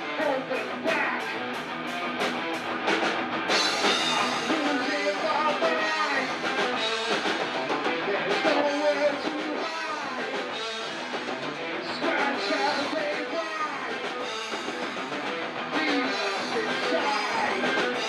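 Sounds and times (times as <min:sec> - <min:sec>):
person singing: 0:00.0 - 0:01.4, 0:03.9 - 0:06.4, 0:07.9 - 0:10.6, 0:11.8 - 0:14.4, 0:15.7 - 0:18.0
bass guitar: 0:00.0 - 0:18.0
drum kit: 0:00.0 - 0:18.0
electric guitars: 0:00.0 - 0:18.0.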